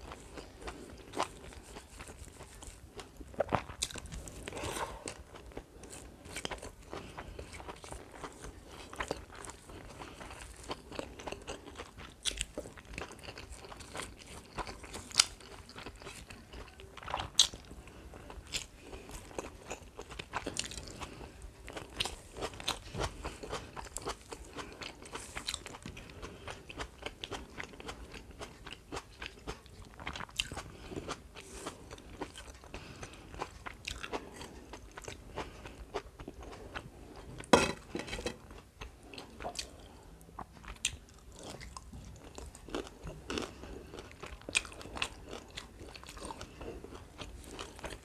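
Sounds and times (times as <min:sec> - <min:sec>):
crunchy chewing: 0:00.0 - 0:48.0.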